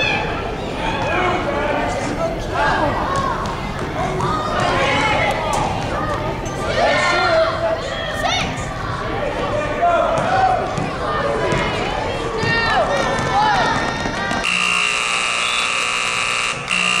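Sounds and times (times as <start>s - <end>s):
voices of players and spectators: 0.0s - 17.0s
scoreboard buzzer long tone: 14.4s - 17.0s.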